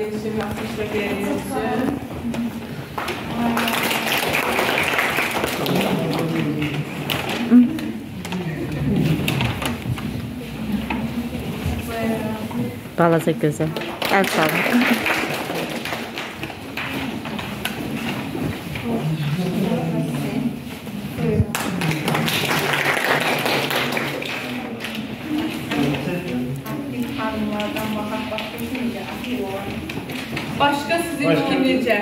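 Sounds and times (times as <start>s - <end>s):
audience applauding: 2.9s - 9.8s, 13.8s - 17.8s, 21.5s - 25.0s
people talking indistinctly: 5.5s - 15.8s, 24.1s - 32.0s.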